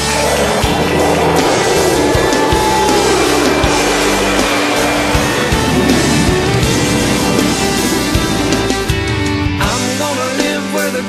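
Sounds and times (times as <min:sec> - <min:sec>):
aircraft roar overhead: 0:00.0 - 0:09.9
music playing: 0:00.0 - 0:11.0.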